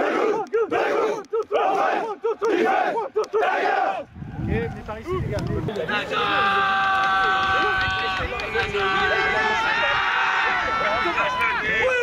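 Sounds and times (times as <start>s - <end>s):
men chanting: 0.0s - 4.0s.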